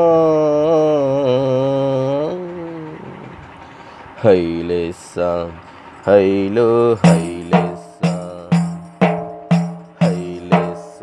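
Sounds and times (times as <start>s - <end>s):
man singing long note: 0.0s - 3.2s, 10.0s - 11.0s.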